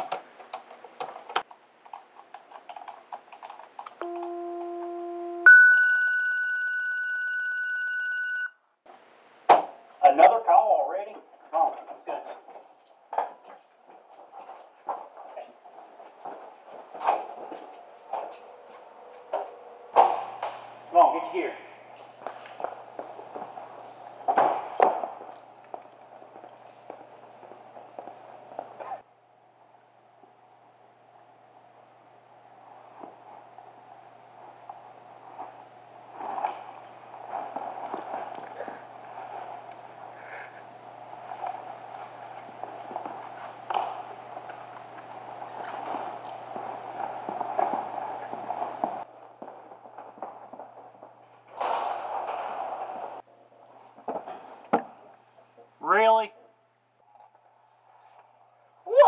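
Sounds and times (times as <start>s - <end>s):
steady low hum: 4.0s - 7.4s, 14.9s - 54.0s
footsteps: 11.1s - 29.0s, 32.7s - 55.7s
fabric rustling: 32.7s - 49.1s.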